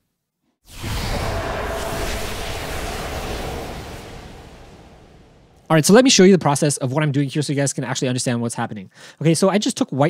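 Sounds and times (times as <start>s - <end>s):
dense rush of noise: 0.7s - 5.8s.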